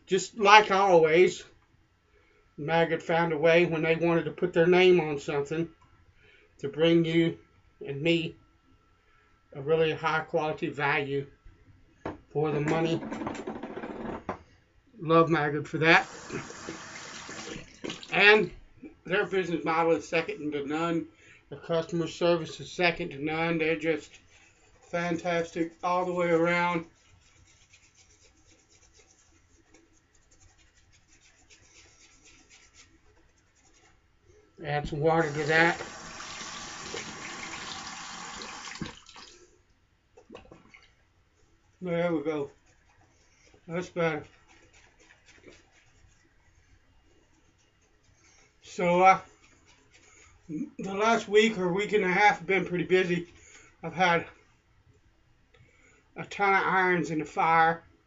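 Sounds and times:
water running from a tap: 16.0s - 18.2s, 35.2s - 39.4s
shaving brush swishing on soap: 24.0s - 34.0s, 42.4s - 50.4s.

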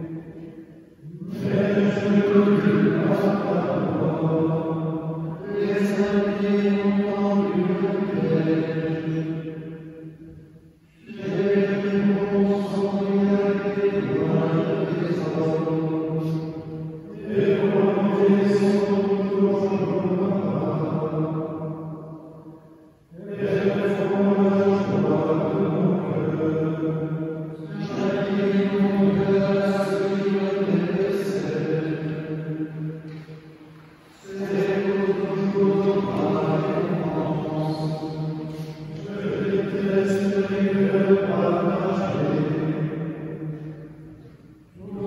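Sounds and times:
men singing chant: 1.0s - 4.8s, 5.4s - 9.2s, 11.0s - 16.5s, 17.1s - 21.1s, 23.1s - 27.0s, 27.6s - 32.2s, 34.2s - 42.6s, 44.8s - 45.0s.

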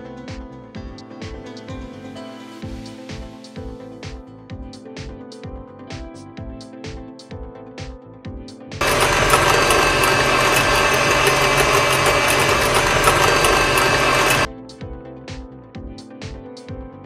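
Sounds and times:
electric hand mixer whisking: 8.8s - 14.5s.

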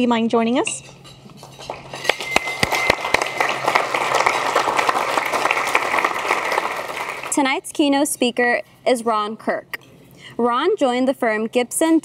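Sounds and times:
audience applauding: 2.0s - 7.4s.

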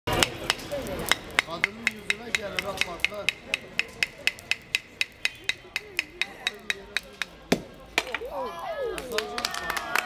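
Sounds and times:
knife tapping clay pot: 0.1s - 7.4s.

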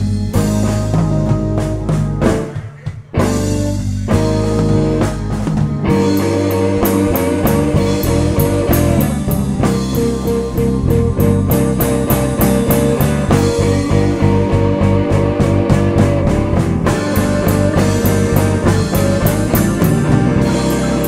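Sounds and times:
drum kit steady beat: 0.0s - 21.0s
live blues band playing: 0.0s - 21.0s.

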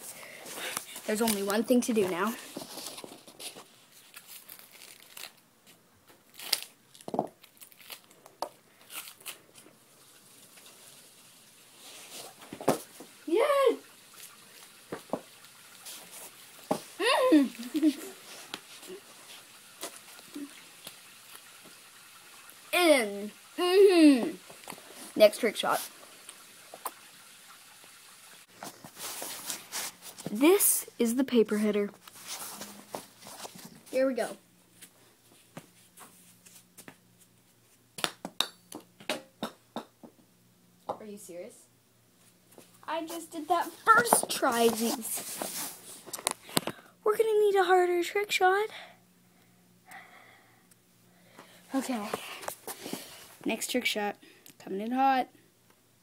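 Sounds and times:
plastic sleeve crinkling: 0.6s - 9.7s.

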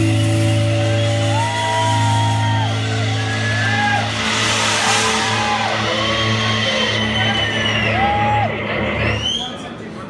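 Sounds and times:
cymbals crashing: 0.0s - 9.1s
bass guitar: 0.0s - 9.5s
distorted electric guitar: 0.0s - 9.5s.

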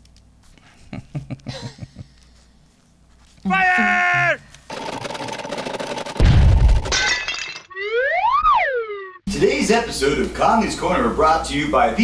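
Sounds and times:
crashing and shattering: 5.8s - 7.8s.

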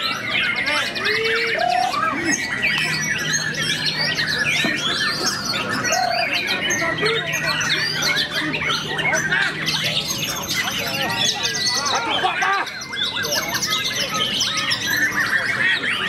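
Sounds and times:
bird singing whistles and trills: 0.0s - 16.0s
other birds calling: 0.0s - 16.0s.

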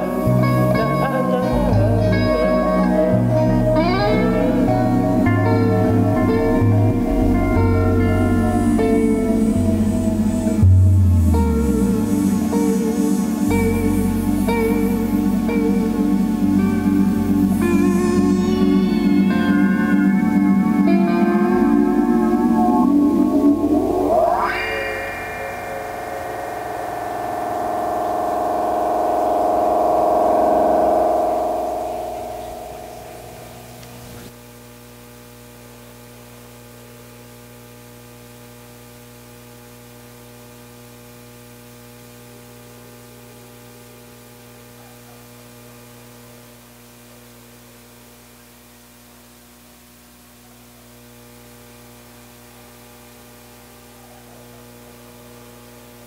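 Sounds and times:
droning tone: 0.0s - 34.3s
electrical hum: 0.0s - 34.3s
electronic music: 0.0s - 34.3s
pitch sweeping upward: 0.0s - 34.3s.

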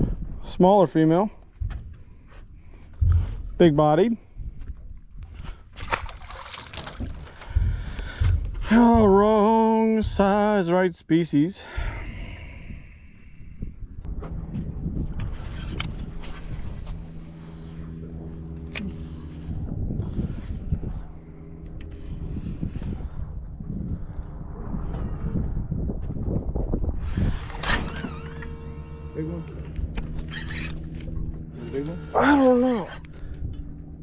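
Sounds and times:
trolling motor humming: 0.0s - 10.6s, 11.8s - 24.3s, 26.8s - 34.0s
wind rumble on microphone: 0.0s - 10.6s, 11.6s - 34.0s.

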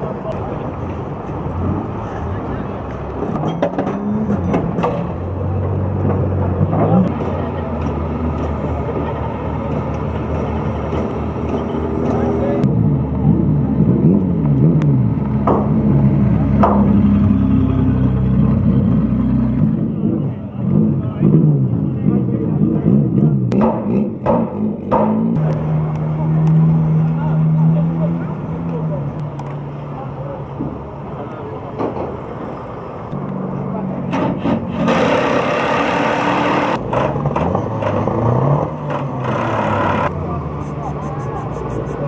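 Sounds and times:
people talking: 0.0s - 5.9s, 6.6s - 10.0s, 11.4s - 14.0s, 19.8s - 23.5s, 25.4s - 32.6s, 39.1s - 42.0s
race car engines running: 0.0s - 42.0s.

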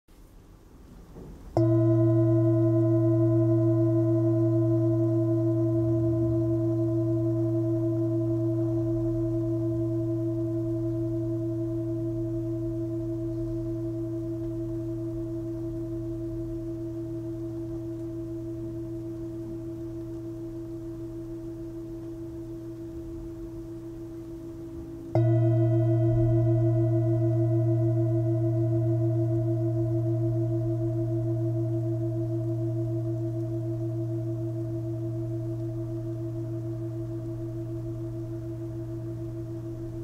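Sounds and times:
singing bowl ringing: 1.6s - 40.0s.

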